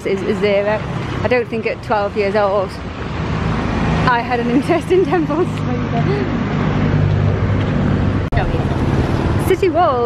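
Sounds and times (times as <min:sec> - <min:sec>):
voice: 0:00.0 - 0:02.8, 0:04.1 - 0:06.4, 0:08.3 - 0:08.8, 0:09.4 - 0:10.0
road traffic engine drone: 0:00.0 - 0:10.0.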